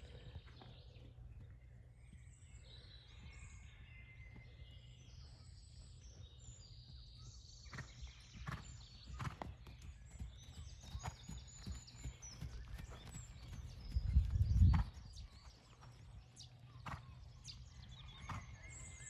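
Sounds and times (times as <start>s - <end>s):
birds chirping: 0.0s - 19.0s
horse hoofbeats on sand: 7.7s - 18.5s.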